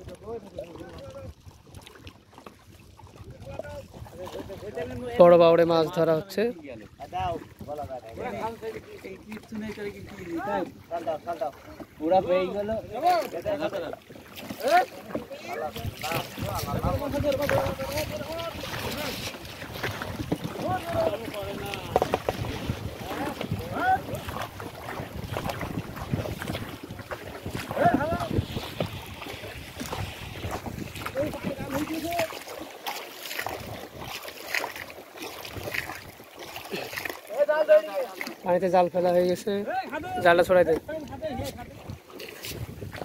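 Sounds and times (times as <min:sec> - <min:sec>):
oars knocking on hull and water: 0:00.0 - 0:43.0
wind on microphone: 0:15.6 - 0:32.3, 0:40.0 - 0:43.0.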